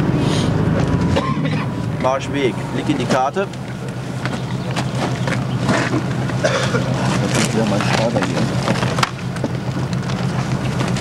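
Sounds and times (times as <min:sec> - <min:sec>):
vehicle engine idling: 0:00.0 - 0:11.0
low voices: 0:01.5 - 0:09.8.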